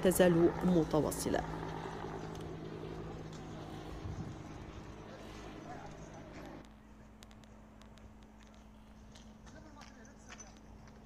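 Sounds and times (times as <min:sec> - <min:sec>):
low steady hum: 0:00.0 - 0:11.0
faint distant voices: 0:03.1 - 0:07.9.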